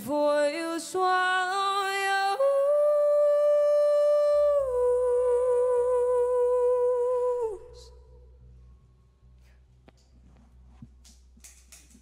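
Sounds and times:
woman singing sustained note: 0.0 - 8.4
soft low accompaniment: 2.4 - 12.0.

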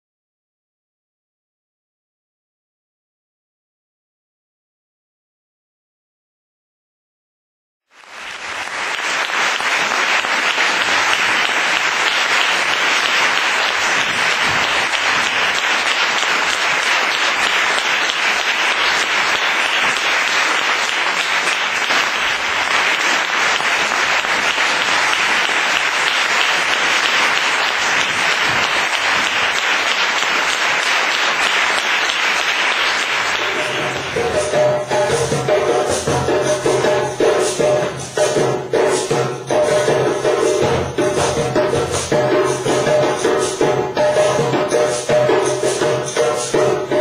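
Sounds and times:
audience applauding: 7.9 - 38.2.

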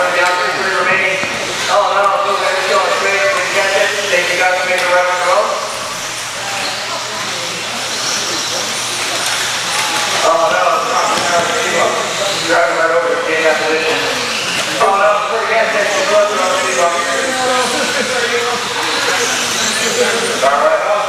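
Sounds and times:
man talking over pa: 0.0 - 5.8, 10.2 - 14.2, 14.8 - 21.0
electric buggies whining on dirt: 0.0 - 21.0.

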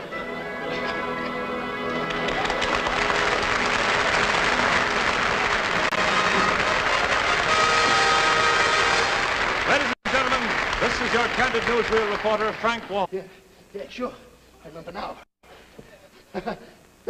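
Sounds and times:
band playing sustained chords: 0.0 - 9.8
audience applause: 2.0 - 12.9.

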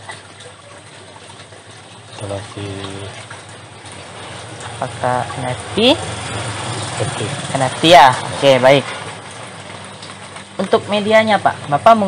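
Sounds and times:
water rushing through pipes: 0.0 - 12.0.

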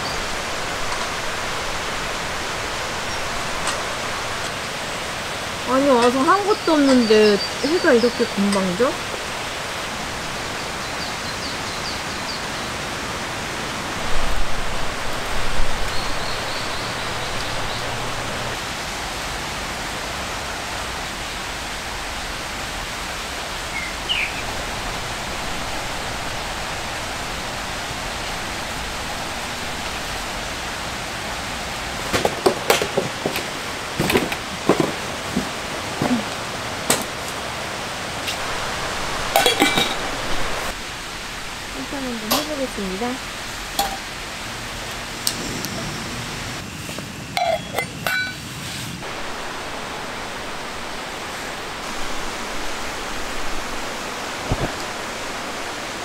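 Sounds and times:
rain: 0.0 - 56.0
running stream water: 0.0 - 56.0.

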